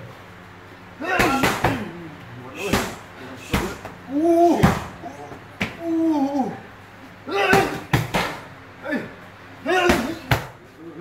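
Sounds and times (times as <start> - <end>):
person shouting short calls: 1.0 - 1.9, 8.9 - 10.3
strikes on a leather kick pad: 7.4 - 8.5.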